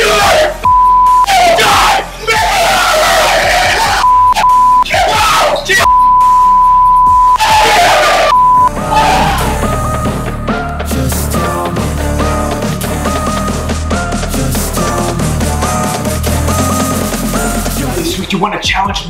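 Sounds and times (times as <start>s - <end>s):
men yelling and screaming: 0.0s - 5.9s, 7.3s - 10.4s
music: 0.0s - 19.0s
censor bleep: 0.6s - 1.3s, 4.0s - 4.9s, 5.9s - 7.4s, 8.3s - 8.7s.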